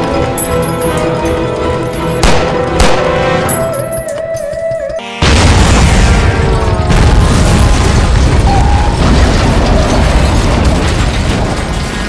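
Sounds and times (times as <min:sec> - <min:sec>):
deep rumbling explosion: 0:05.2 - 0:12.0.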